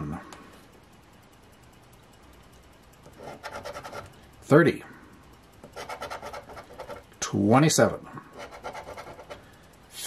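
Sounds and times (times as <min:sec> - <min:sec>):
coin scratching lottery ticket: 0:03.1 - 0:04.1, 0:05.6 - 0:07.1, 0:08.3 - 0:09.4.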